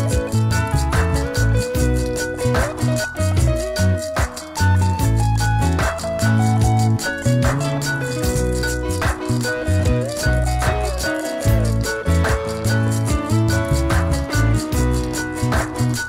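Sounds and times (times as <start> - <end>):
electric guitar: 0.0 - 16.0
heavy beat: 0.0 - 16.0
held bass notes: 0.0 - 16.0
rattling percussion pattern: 0.0 - 16.0.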